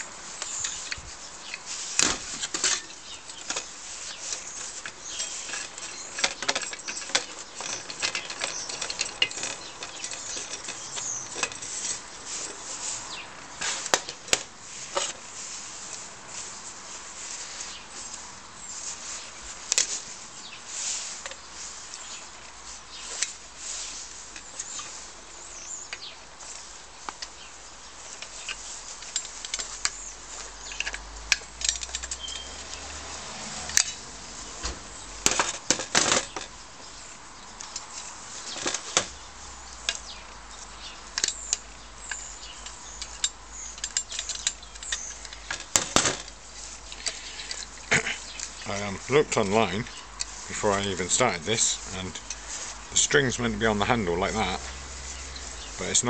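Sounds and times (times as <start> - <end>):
metal parts clicking and tapping: 0.4 - 12.0, 28.1 - 33.0, 33.6 - 34.0, 34.6 - 36.6, 39.8 - 56.0.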